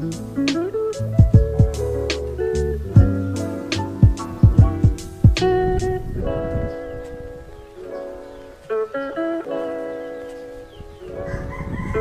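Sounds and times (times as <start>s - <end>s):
guitar chord ringing: 0.0s - 11.5s
rooster crowing: 11.1s - 12.0s.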